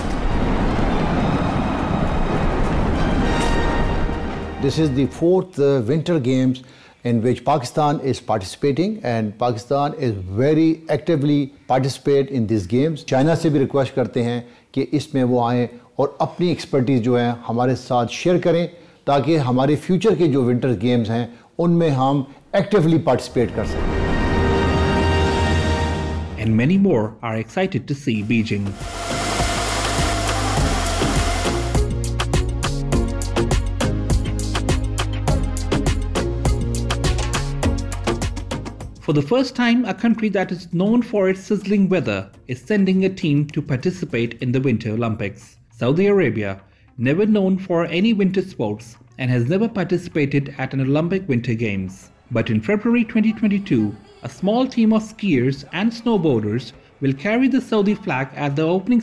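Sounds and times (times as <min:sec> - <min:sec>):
faint crackle: 0:00.0 - 0:03.0
fireworks barrage rumbling: 0:00.0 - 0:04.5
background music: 0:02.8 - 0:05.8, 0:22.7 - 0:26.9, 0:28.1 - 0:59.0.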